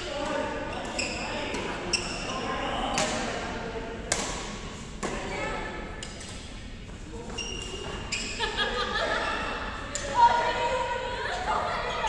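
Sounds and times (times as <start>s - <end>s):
shoes squeaking on court: 0.7s - 2.3s, 7.2s - 8.4s.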